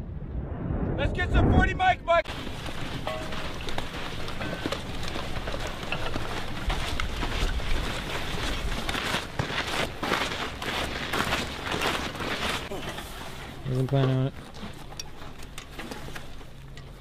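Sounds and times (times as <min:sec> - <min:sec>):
low rumble: 0:00.0 - 0:09.0
footsteps on gravelly sand: 0:02.2 - 0:17.0.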